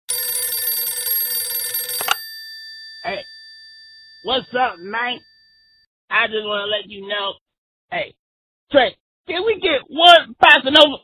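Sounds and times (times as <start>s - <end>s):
telephone bell ringing: 0.1s - 5.8s.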